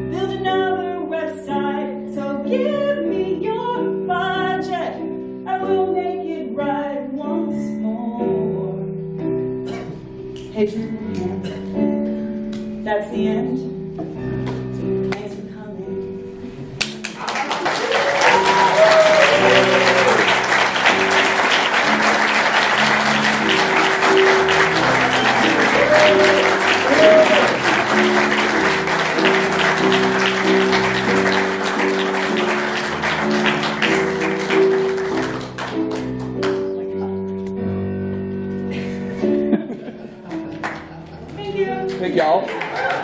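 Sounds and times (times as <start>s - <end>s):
audience applause: 16.8s - 36.6s, 40.3s - 40.9s, 42.2s - 43.0s
audience cheering: 17.2s - 35.0s, 42.5s - 43.0s
backing music track: 17.9s - 37.6s.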